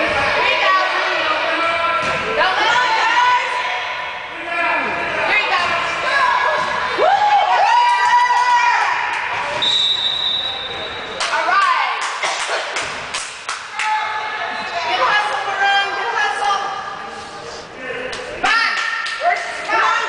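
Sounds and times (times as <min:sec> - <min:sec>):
referee's whistle: 0:09.6 - 0:11.2.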